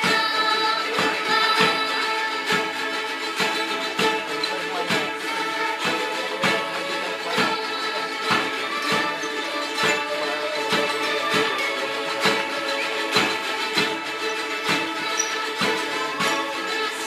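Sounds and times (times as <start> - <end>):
children singing: 0.0 - 17.0
ukulele ensemble strumming: 0.0 - 17.0.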